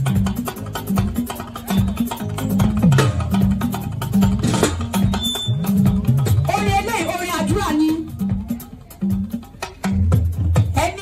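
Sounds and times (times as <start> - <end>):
bass line: 0.0 - 11.0
church praise band playing: 0.0 - 11.0
fast drums: 0.0 - 11.0
hand percussion: 0.0 - 11.0.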